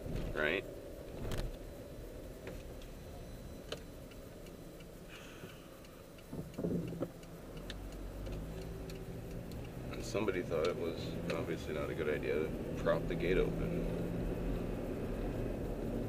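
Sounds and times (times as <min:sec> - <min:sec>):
car engine and road hum: 0:00.0 - 0:16.0
turn signal ticking: 0:00.9 - 0:16.0.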